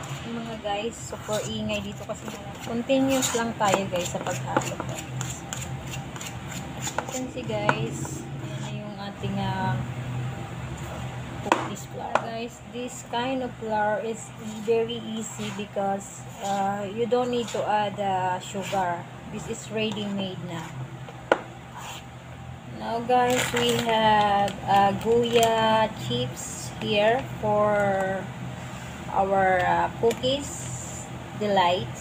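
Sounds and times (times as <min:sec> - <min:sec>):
metal spoon scraping a bowl: 0:01.1 - 0:07.4, 0:14.2 - 0:19.0.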